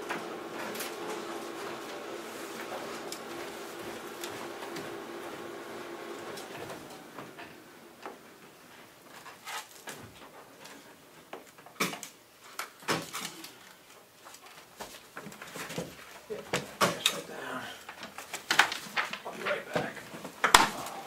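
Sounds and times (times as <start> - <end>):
machine hum: 0.0 - 9.0
papers rustling: 0.0 - 21.0.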